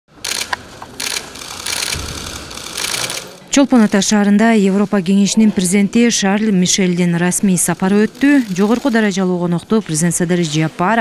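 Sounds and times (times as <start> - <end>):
camera shutters firing: 0.2 - 3.4.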